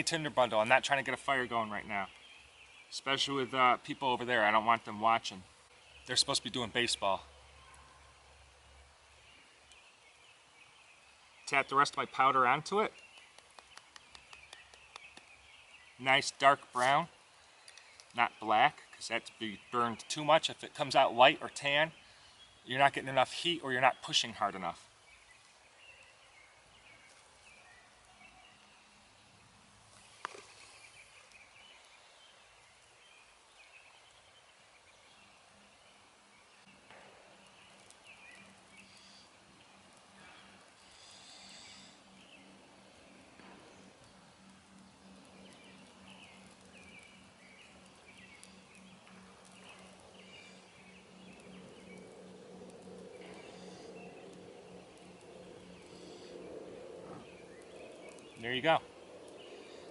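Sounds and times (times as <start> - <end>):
faint distant birdsong: 0.0 - 59.9
soft breathy blowing: 38.7 - 39.5, 40.2 - 42.2, 52.8 - 57.4.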